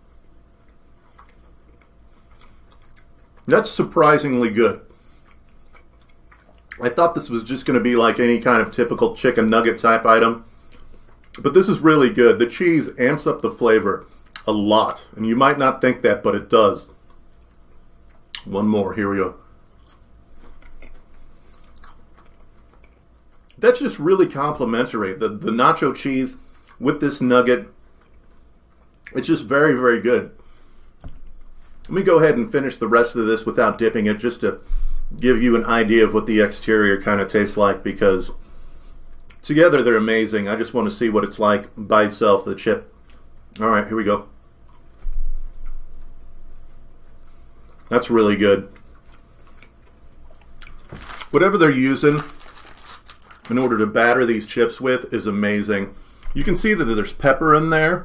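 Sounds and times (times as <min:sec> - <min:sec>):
chewing fried chicken crunches: 0:00.6 - 0:08.2, 0:19.4 - 0:24.0, 0:45.6 - 0:53.8.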